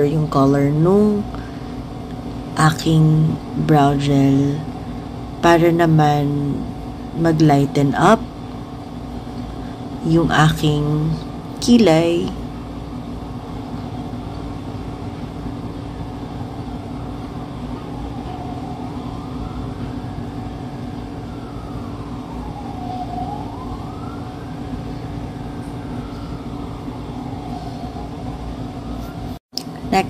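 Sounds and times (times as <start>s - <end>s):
steady low hum: 0.0s - 30.0s
siren wailing: 16.4s - 29.4s.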